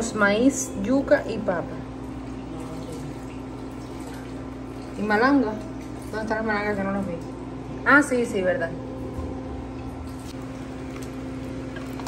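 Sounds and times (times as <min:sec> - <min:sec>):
induction cooktop humming: 0:00.0 - 0:12.0.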